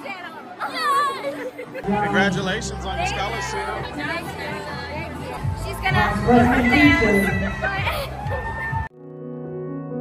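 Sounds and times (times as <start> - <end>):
chatter: 0.0 - 8.9
girls' excited voices: 0.0 - 8.9
music with deep bass: 1.8 - 8.9.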